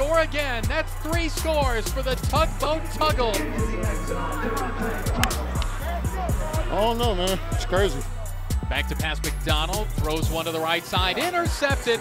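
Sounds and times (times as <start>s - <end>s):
hip-hop backing music: 0.0s - 12.0s.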